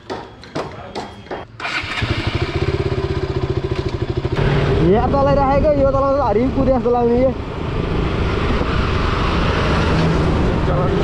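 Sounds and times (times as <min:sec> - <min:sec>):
motorcycle starter cranking: 0:01.6 - 0:03.0
motorcycle engine idling and revving: 0:01.6 - 0:11.0.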